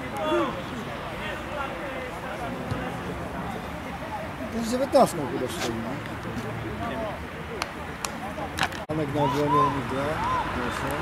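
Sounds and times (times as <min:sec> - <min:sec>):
faint voices calling out: 0:00.0 - 0:11.0.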